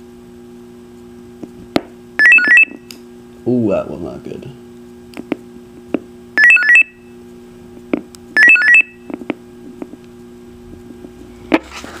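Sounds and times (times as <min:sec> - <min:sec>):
steady low hum: 0:00.0 - 0:12.0
radio high-pitched beeps: 0:02.2 - 0:02.8, 0:06.4 - 0:07.0
radio control clicks: 0:05.1 - 0:06.1.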